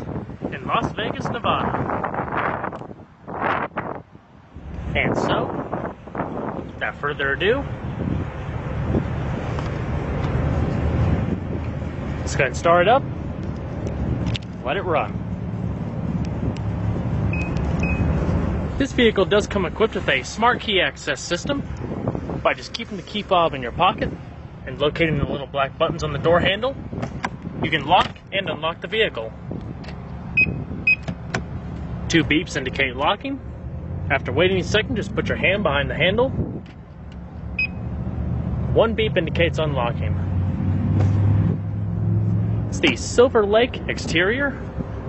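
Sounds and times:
wind buffeting microphone: 0:00.0 - 0:37.4, 0:40.0 - 0:45.0
short high car lock beeps: 0:17.3 - 0:18.2, 0:30.4 - 0:31.2, 0:37.6 - 0:37.8.

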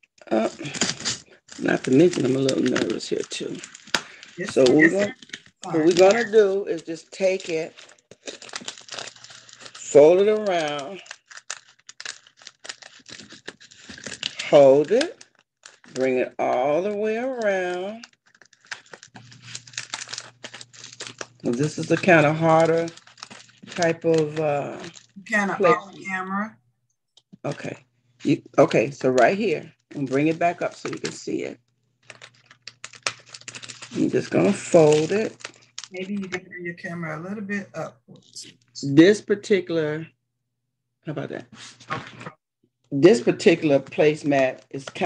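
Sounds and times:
stiff placemat crinkling: 0:00.2 - 0:25.8, 0:28.2 - 0:31.2, 0:32.0 - 0:36.2, 0:43.1 - 0:45.0.

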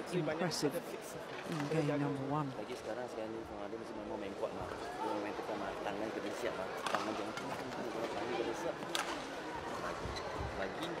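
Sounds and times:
indoor arena background noise: 0:00.0 - 0:11.0.

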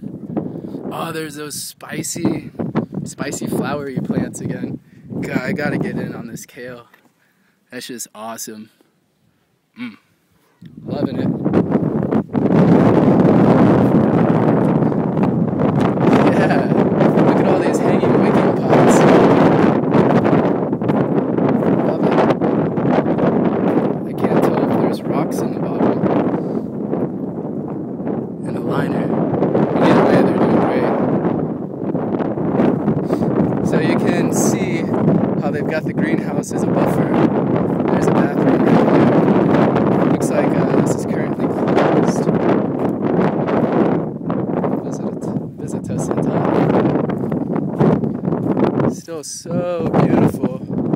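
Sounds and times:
wind buffeting microphone: 0:00.0 - 0:07.0, 0:10.5 - 0:50.9.

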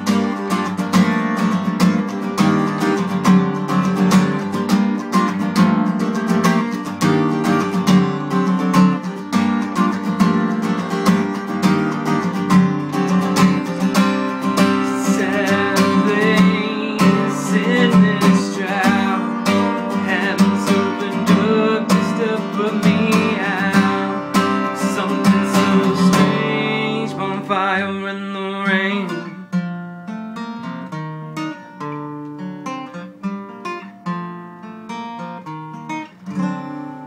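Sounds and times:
acoustic guitar strumming: 0:00.0 - 0:37.0.

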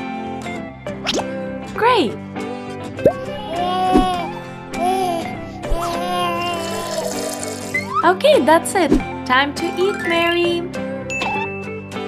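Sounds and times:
background music: 0:00.0 - 0:12.0
liquid pouring into plastic cup: 0:06.5 - 0:07.9.

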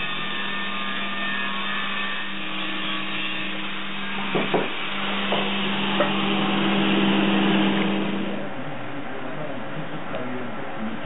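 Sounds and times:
electric grinder running: 0:00.0 - 0:08.4.

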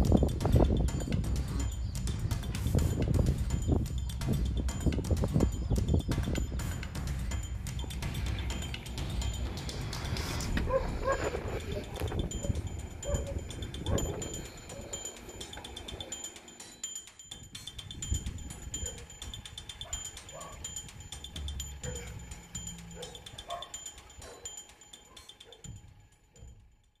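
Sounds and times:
low rumble: 0:00.0 - 0:14.9
high rapidly pulsing chirp: 0:00.1 - 0:26.7
distant dogs barking: 0:10.5 - 0:16.4, 0:18.7 - 0:20.8, 0:21.8 - 0:25.8.

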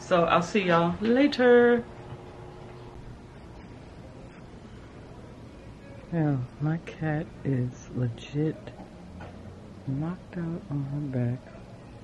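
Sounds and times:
background hiss and hum: 0:00.0 - 0:12.0.

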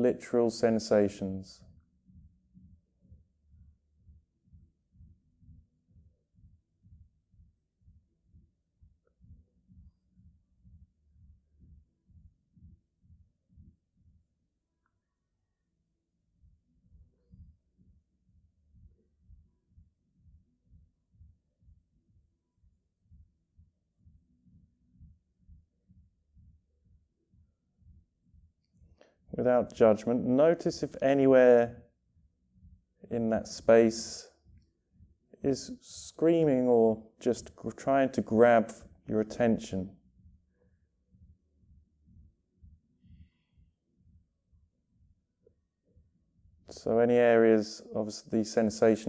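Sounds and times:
faint low pulsing: 0:00.0 - 0:37.7, 0:38.3 - 0:48.0.

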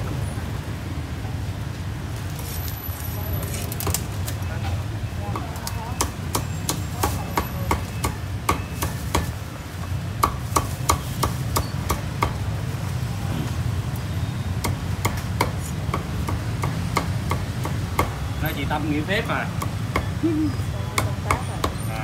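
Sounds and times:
cleaver chopping on wooden block: 0:10.2 - 0:12.4.

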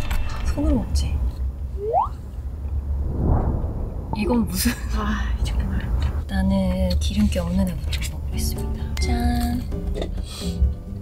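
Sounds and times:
van cabin road rumble: 0:00.0 - 0:11.0
short rising tone: 0:02.8 - 0:04.8.

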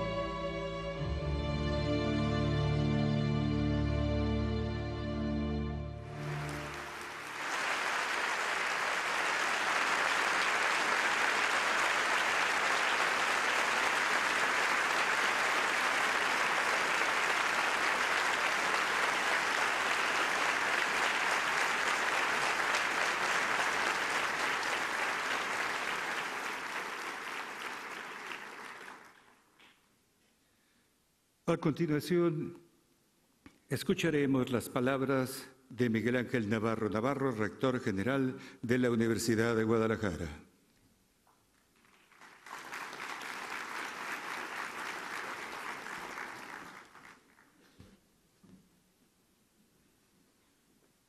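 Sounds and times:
large audience applauding: 0:06.0 - 0:29.7, 0:41.4 - 0:47.8.

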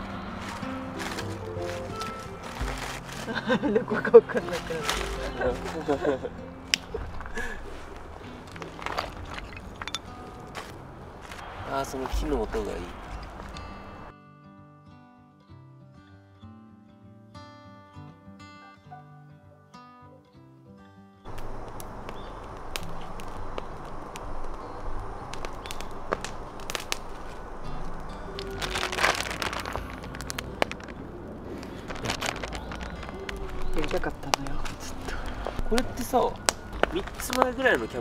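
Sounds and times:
soft instrumental music: 0:00.0 - 0:11.4, 0:12.3 - 0:21.8, 0:22.7 - 0:38.0
campfire crackling and popping: 0:00.0 - 0:14.1, 0:21.3 - 0:38.0
rustle: 0:00.0 - 0:14.1, 0:21.3 - 0:38.0.

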